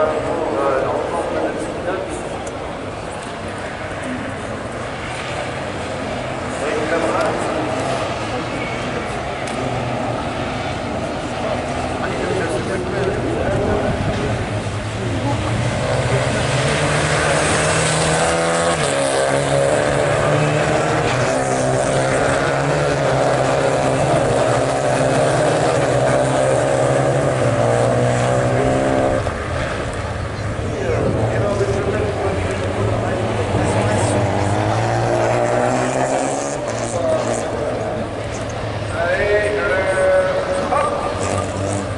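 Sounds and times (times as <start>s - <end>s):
race car engines running hard: 0.0s - 41.9s.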